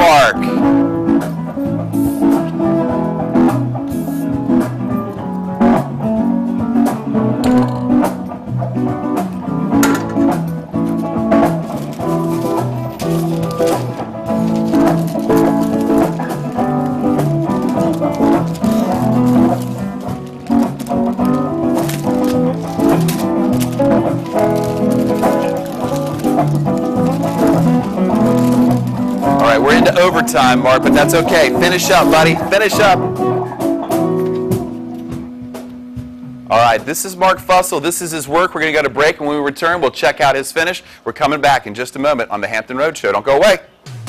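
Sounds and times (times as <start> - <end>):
plucked guitar: 0.3 - 36.9
percussion beat: 6.9 - 8.5, 9.2 - 37.7.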